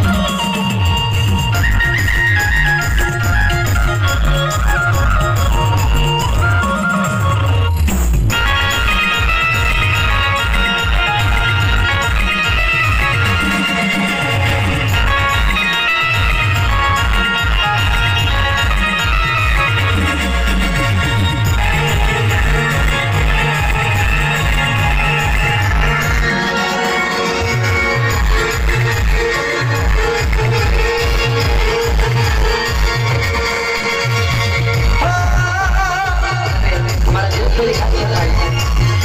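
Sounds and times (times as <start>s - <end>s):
electronic keyboard melody: 0.0s - 39.0s
fast driving low beat: 0.0s - 39.0s.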